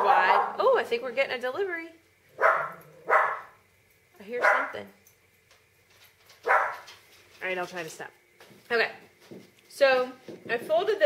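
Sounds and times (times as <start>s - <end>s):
dog barking: 0.0s - 0.6s, 2.4s - 3.6s, 4.4s - 4.8s, 6.4s - 6.9s.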